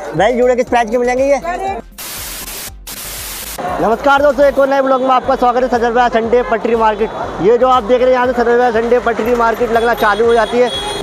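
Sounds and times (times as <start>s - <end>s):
white noise static burst: 2.0s - 3.8s.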